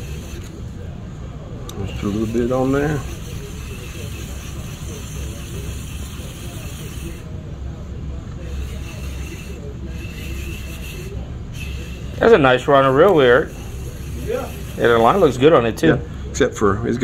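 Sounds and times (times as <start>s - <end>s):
fishing reel gears whirring: 0.0s - 0.7s, 1.7s - 7.3s, 8.4s - 15.8s.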